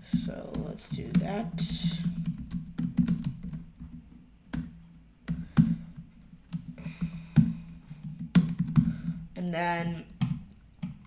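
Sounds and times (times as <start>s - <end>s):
computer keyboard typing: 0.1s - 9.2s.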